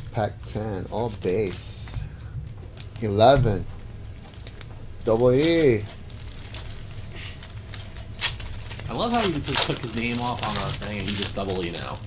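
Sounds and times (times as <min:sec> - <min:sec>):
card pack wrapper tearing: 0:00.4 - 0:02.0, 0:04.0 - 0:12.0.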